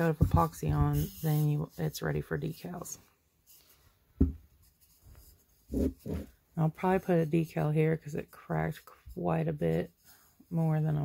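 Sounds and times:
faint rubbing: 0.0s - 11.0s.

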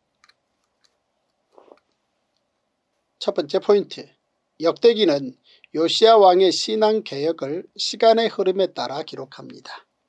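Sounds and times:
faint small clicks: 0.1s - 2.5s.

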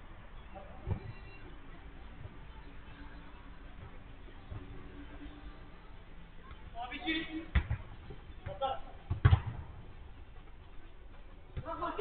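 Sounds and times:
football kick thuds: 7.5s - 9.8s.

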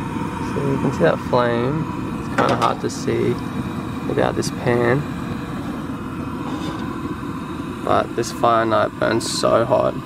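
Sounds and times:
gas stove burner rushing: 0.0s - 10.0s.

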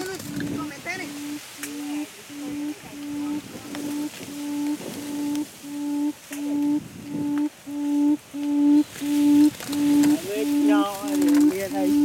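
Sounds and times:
quail hooting call: 0.0s - 12.0s.

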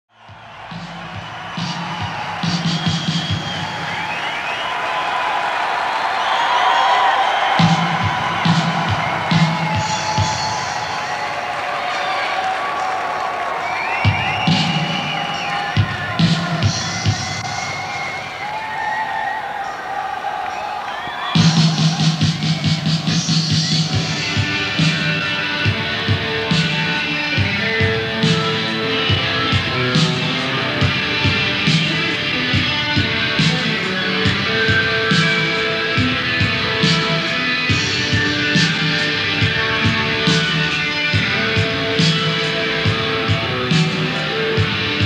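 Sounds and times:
concert crowd cheering and whooping: 0.1s - 45.0s
low band beat: 0.6s - 3.8s, 7.6s - 11.5s, 14.1s - 17.5s
live rock song: 0.8s - 4.6s, 7.3s - 18.6s, 21.4s - 45.0s.

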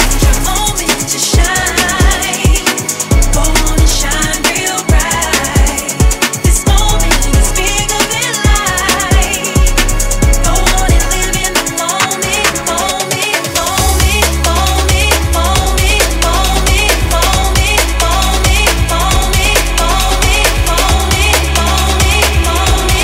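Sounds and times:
fast breakbeat drums: 0.0s - 23.0s
heavy sub-bass: 0.0s - 23.0s
repeating synth riff: 0.0s - 23.0s.

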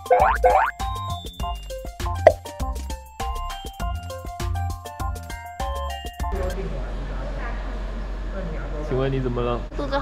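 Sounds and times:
cartoon pitch sweep effects: 0.0s - 1.0s
background music of short notes: 0.0s - 2.5s.

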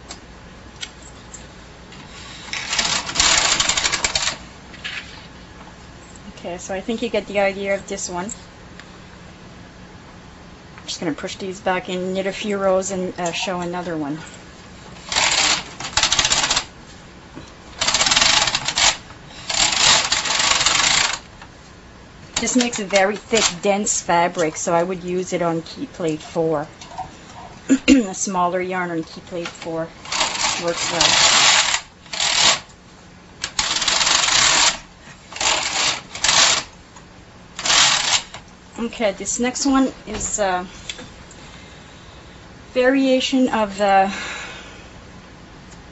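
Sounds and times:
knitting machine carriage clattering: 2.5s - 4.4s, 15.0s - 16.7s, 17.8s - 21.3s, 22.4s - 24.7s, 29.0s - 32.7s, 33.4s - 36.7s, 37.6s - 38.4s.

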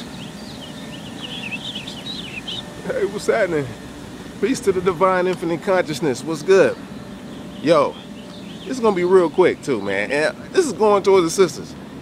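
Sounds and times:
songbird warbling chirps: 0.0s - 2.9s, 6.7s - 10.2s
low outdoor background hum: 0.0s - 12.0s.

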